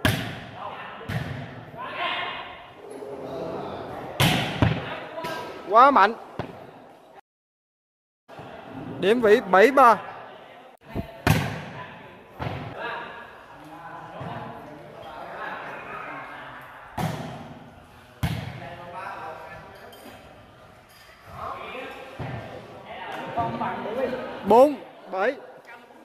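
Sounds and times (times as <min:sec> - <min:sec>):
volleyball being hit: 0:00.0 - 0:00.5, 0:04.2 - 0:05.4, 0:11.0 - 0:11.8.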